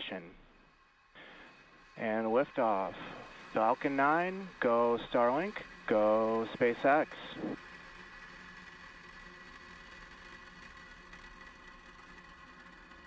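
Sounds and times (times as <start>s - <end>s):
rocket engines rushing hiss: 1.2s - 8.1s.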